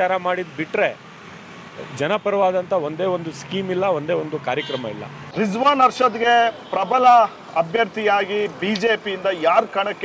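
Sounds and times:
man talking: 1.8s - 10.0s.

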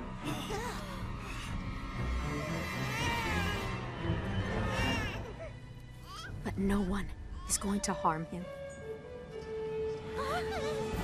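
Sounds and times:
background music: 0.0s - 11.0s
baby crying: 0.3s - 1.5s, 2.1s - 3.9s, 4.6s - 6.3s.

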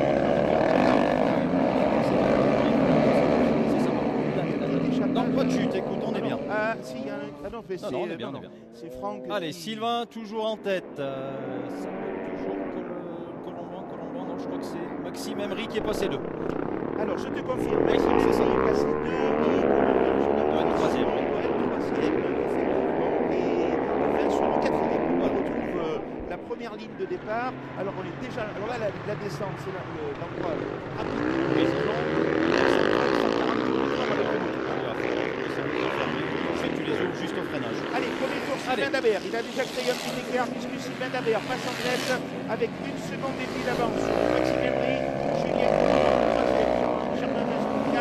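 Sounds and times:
motocross motorcycles racing: 0.0s - 48.0s.

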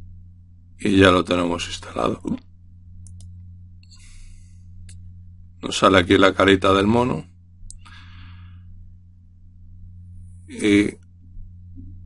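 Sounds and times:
soft hiss: 0.0s - 12.0s
steady low hum: 0.0s - 12.0s
computer mouse clicks: 3.0s - 4.0s.

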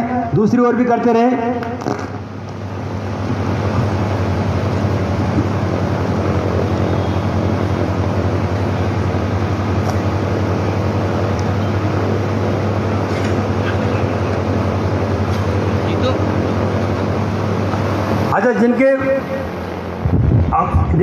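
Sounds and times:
low machine hum: 0.0s - 21.0s
even rushing noise: 2.0s - 21.0s.

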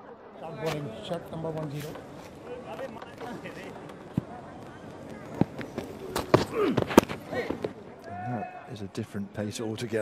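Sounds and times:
players calling: 0.4s - 8.9s.

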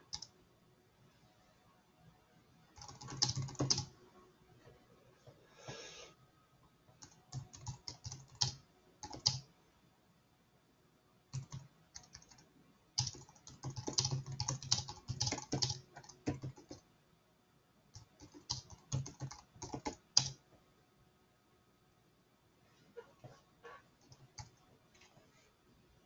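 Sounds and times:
typing on computer keyboard: 0.0s - 0.3s, 2.8s - 3.9s, 7.0s - 9.5s, 11.3s - 16.8s, 17.9s - 20.4s, 24.0s - 24.6s.

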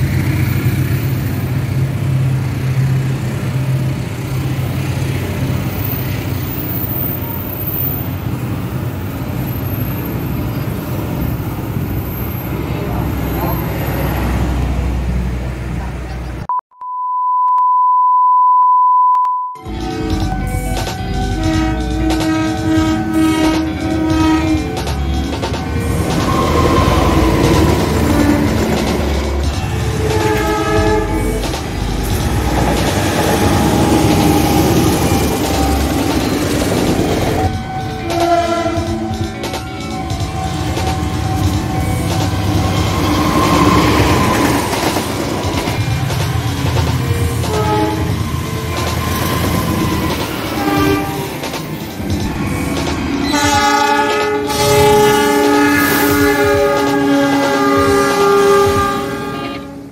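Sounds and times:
wheel noise on rails: 0.0s - 16.4s, 19.6s - 59.9s
multi-tone train horn: 19.6s - 51.4s, 53.2s - 59.9s
locomotives rumbling past: 19.7s - 59.9s.

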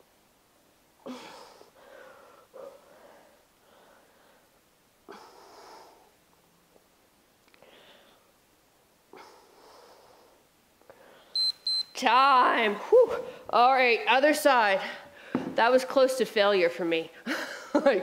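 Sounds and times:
short high timer beeps: 11.4s - 12.0s.

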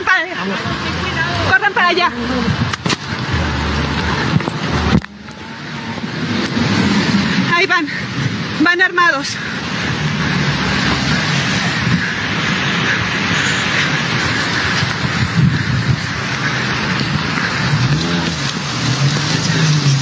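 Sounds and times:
vehicle engine running: 0.3s - 8.5s, 9.6s - 20.0s.

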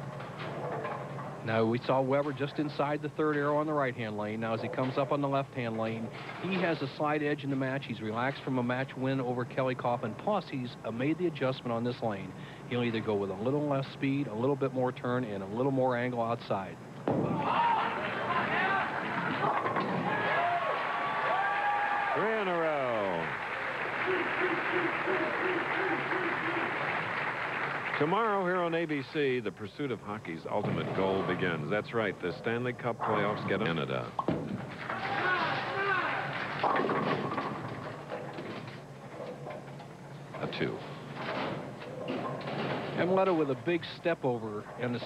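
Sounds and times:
bowling ball rolling on lane: 17.0s - 21.0s
bowling pins crashing: 17.0s - 28.1s, 30.5s - 39.8s, 40.7s - 45.0s
spectators calling out: 22.1s - 27.1s
clatter of falling pins: 34.4s - 39.8s.

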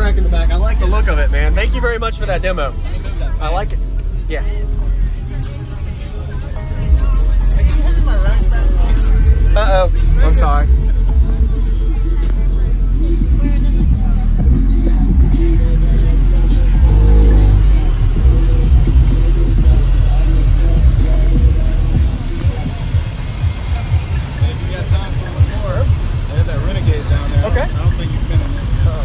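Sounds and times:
bass-heavy music from car stereo: 0.0s - 29.0s
engine idling with uneven rumble: 0.0s - 29.0s.

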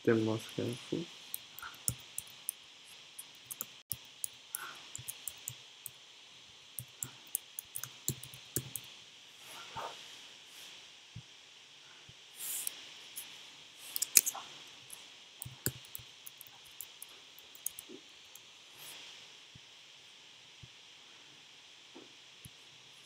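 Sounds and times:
keyboard keys clicking: 5.0s - 5.6s, 6.8s - 8.8s, 15.4s - 17.8s.

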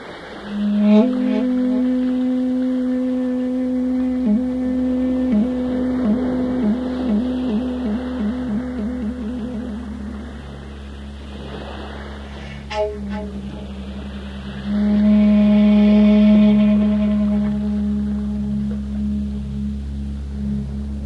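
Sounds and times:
bamboo flute notes: 0.0s - 21.0s.

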